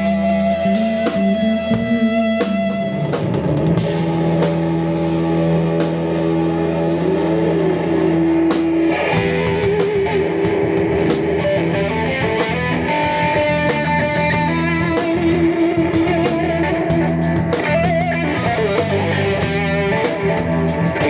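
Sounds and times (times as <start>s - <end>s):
bass guitar: 0.0s - 21.0s
drum and cymbal hits: 0.0s - 21.0s
electric guitar sustained notes: 0.0s - 21.0s.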